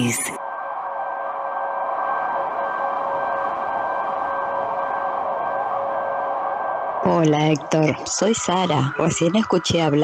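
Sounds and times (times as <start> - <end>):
steady noise drone: 0.0 - 10.0.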